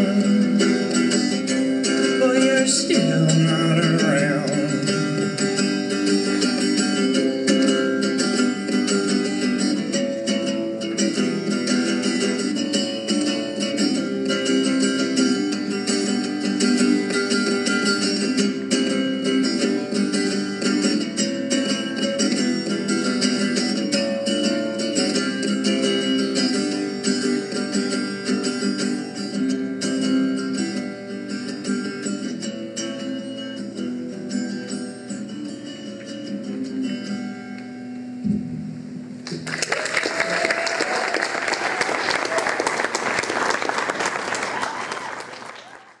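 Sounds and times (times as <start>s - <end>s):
solo guitar playing: 0.0s - 39.5s
audience applauding: 39.2s - 46.0s.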